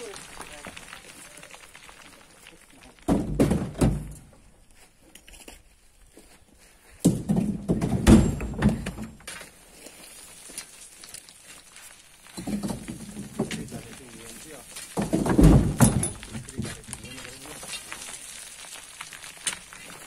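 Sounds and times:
earth and stones rumbling down slope: 0:00.0 - 0:04.2, 0:07.1 - 0:20.0.

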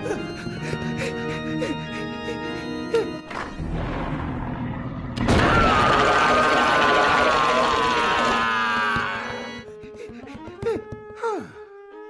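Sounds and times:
cartoon dog screaming: 0:05.3 - 0:09.3.

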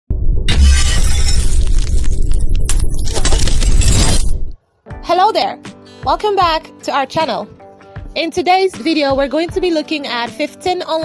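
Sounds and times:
deep bass hit: 0:00.1 - 0:02.8
crashing shattering sound effect: 0:00.1 - 0:04.6.

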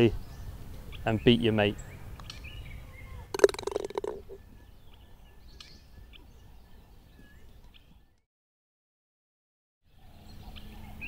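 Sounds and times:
outdoor background noise: 0:00.0 - 0:08.2, 0:09.8 - 0:11.0
putter striking golf ball: 0:03.3 - 0:04.4.

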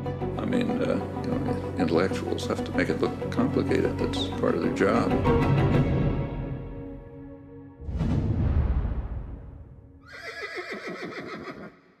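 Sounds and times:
horse whinnying: 0:10.0 - 0:11.9.

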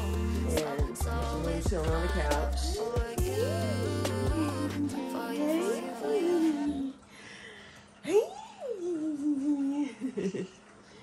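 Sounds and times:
person humming: 0:00.0 - 0:07.0, 0:08.0 - 0:10.0.

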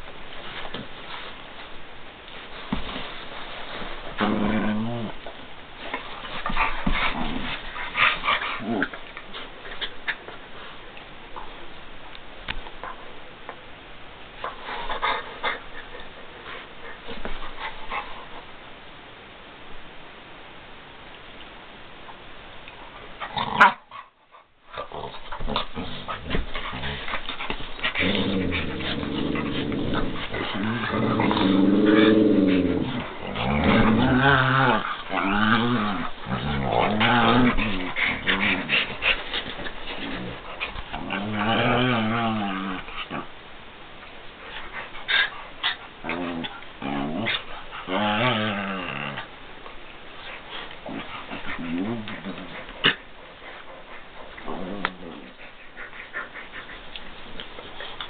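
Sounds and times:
dogs scuffling: 0:00.0 - 0:10.8, 0:24.8 - 0:41.7
dogs growling in play: 0:02.5 - 0:10.4, 0:22.9 - 0:43.4, 0:44.0 - 0:58.0.

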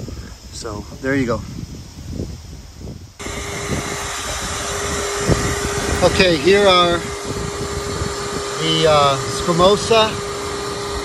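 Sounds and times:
rushing airflow hiss: 0:00.0 - 0:11.0
vacuum motor humming: 0:03.2 - 0:11.0.

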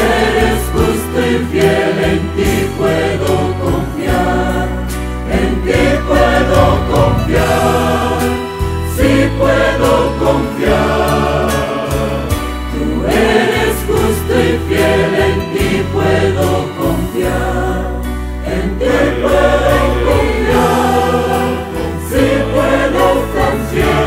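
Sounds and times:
mixed choir singing a hymn: 0:00.0 - 0:24.0
low sustained bass notes: 0:06.1 - 0:09.4.

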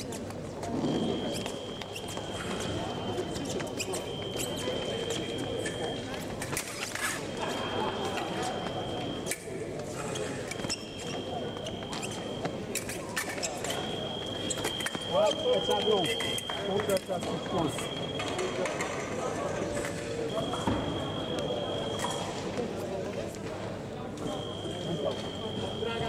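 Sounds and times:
loud voices: 0:00.6 - 0:22.7, 0:24.0 - 0:26.0
scoring machine beeping: 0:07.8 - 0:09.4, 0:13.7 - 0:18.7, 0:20.3 - 0:22.3, 0:24.2 - 0:26.0.

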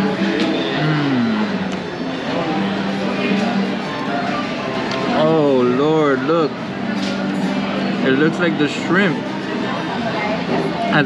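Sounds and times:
murmur of diners' voices: 0:00.0 - 0:11.0
music playing: 0:00.0 - 0:11.0.

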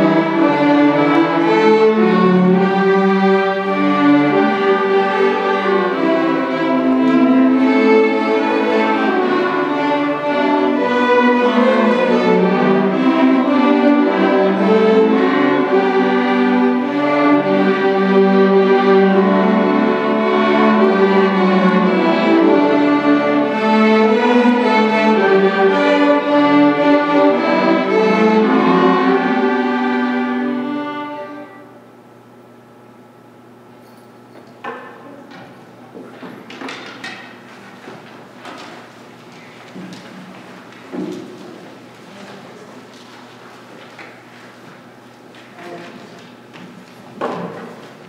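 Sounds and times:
string orchestra playing: 0:00.0 - 0:31.8.

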